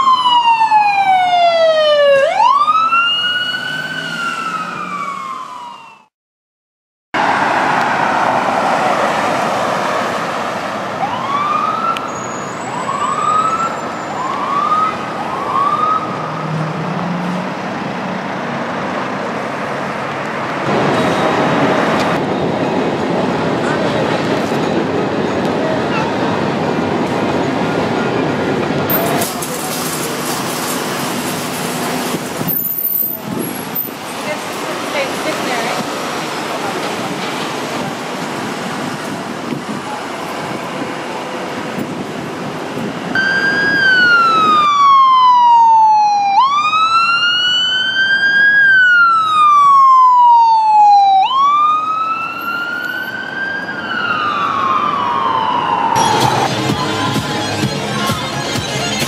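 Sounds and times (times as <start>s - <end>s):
emergency siren wailing: 0.0s - 6.1s, 7.2s - 18.7s, 43.0s - 58.9s.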